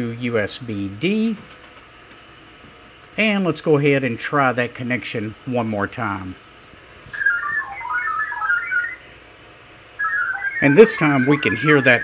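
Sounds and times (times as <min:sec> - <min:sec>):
digital modem tones: 0:07.1 - 0:09.1, 0:10.0 - 0:12.0.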